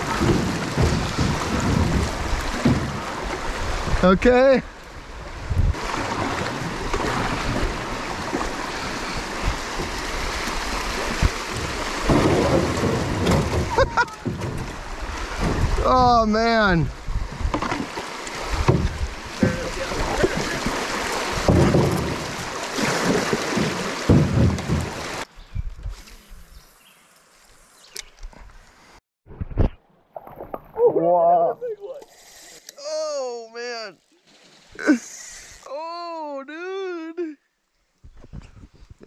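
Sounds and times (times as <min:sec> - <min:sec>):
knocks against canoe hull: 0:00.0 - 0:03.2, 0:11.1 - 0:15.8, 0:17.4 - 0:18.0, 0:18.6 - 0:20.4, 0:21.3 - 0:25.2
rushing river water: 0:00.0 - 0:25.3
person squealing: 0:34.8 - 0:37.4.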